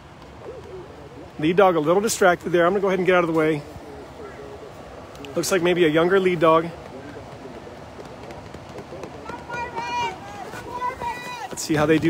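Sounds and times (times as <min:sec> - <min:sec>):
dog paws on packed snow: 0:05.4 - 0:12.0.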